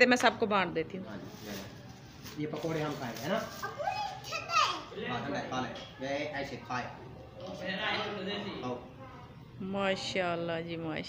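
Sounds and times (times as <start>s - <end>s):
quiet talk: 1.1s - 11.0s
toddlers babbling and calling out: 3.6s - 5.0s.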